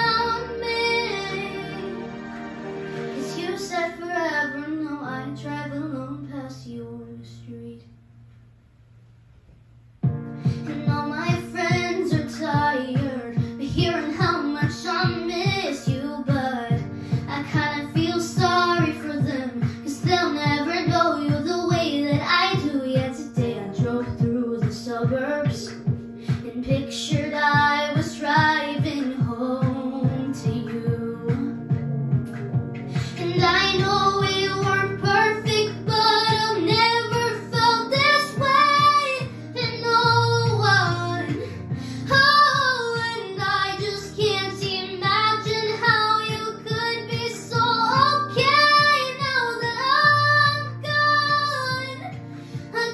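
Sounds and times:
girl singing pop ballad: 0.0 - 8.0, 10.0 - 52.9
backing track with low chords: 10.0 - 52.9.

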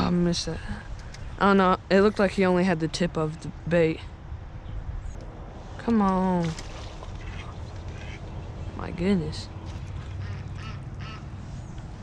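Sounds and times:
low steady rumble: 0.0 - 12.0
duck quacking: 10.2 - 11.3.

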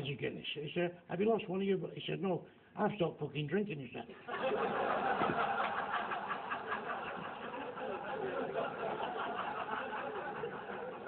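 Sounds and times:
crowd laughing loudly: 4.2 - 11.0.

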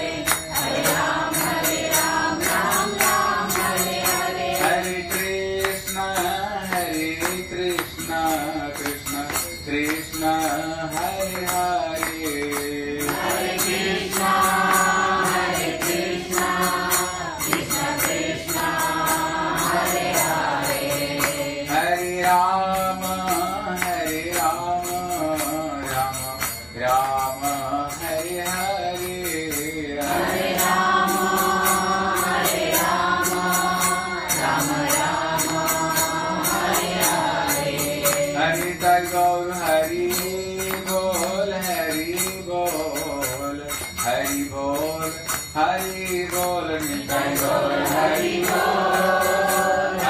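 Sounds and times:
hand cymbals: 0.0 - 50.0
jingling metal percussion: 0.0 - 50.0
man singing devotional chant: 0.0 - 50.0.

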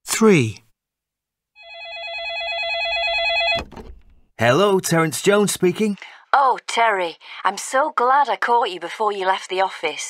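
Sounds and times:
telephone ringing with warbling trill: 1.6 - 3.6.

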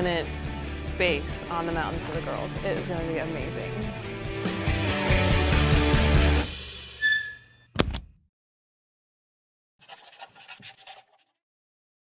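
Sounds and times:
short bright tone: 7.0 - 7.5
scratchy scribbling strokes: 9.8 - 11.4.

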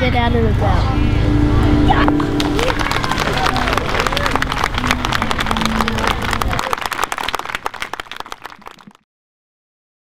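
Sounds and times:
low rumble: 0.8 - 6.7
voice holding pitched note: 0.9 - 4.6
crowd applauding: 2.0 - 9.0.

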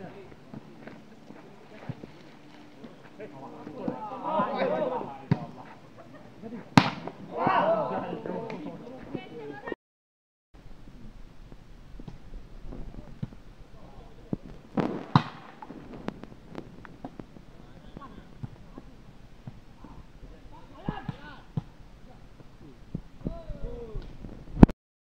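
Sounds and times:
players shouting: 3.5 - 5.6, 7.1 - 8.8
volleyball being struck: 6.8 - 7.1.

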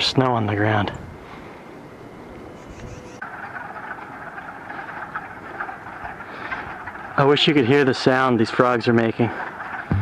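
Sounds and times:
outdoor background hiss: 0.0 - 10.0
light wind on microphone: 2.3 - 3.2.

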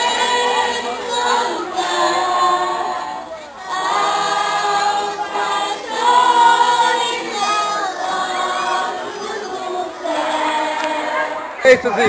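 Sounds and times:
choir singing: 0.0 - 11.7.

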